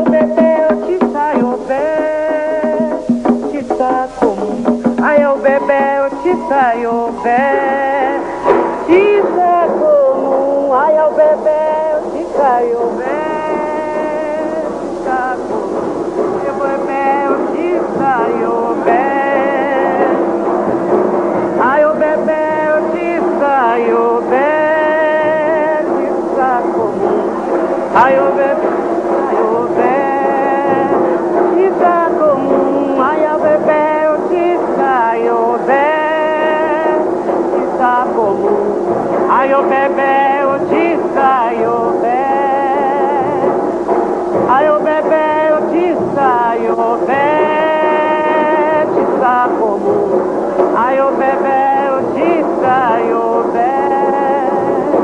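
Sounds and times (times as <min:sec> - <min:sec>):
person singing slow chant: 0:00.0 - 0:55.0.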